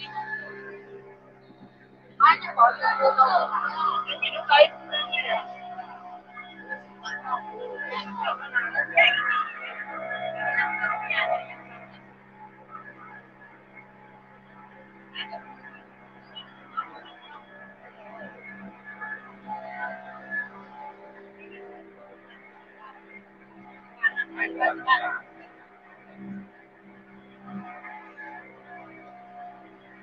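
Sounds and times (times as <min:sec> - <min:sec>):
motor boat engine hum: 0:00.0 - 0:30.0.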